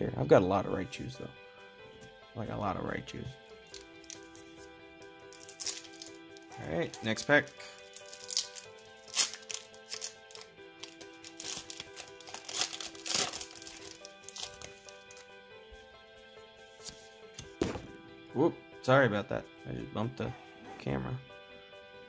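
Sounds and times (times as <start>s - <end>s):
background music: 0.0s - 22.0s
foil wrapper crinkling and tearing: 3.7s - 4.5s, 5.2s - 15.2s
thump of camera being knocked: 17.6s - 18.0s.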